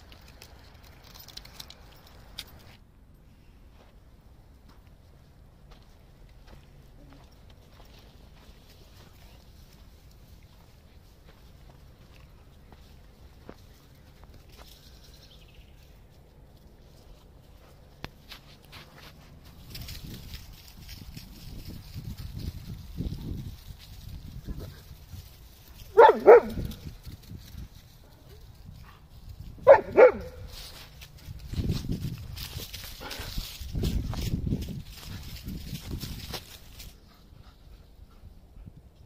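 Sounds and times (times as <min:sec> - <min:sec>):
rustling and rumbling noise: 0:00.0 - 0:38.8
dog barking: 0:25.9 - 0:26.8, 0:29.6 - 0:30.5.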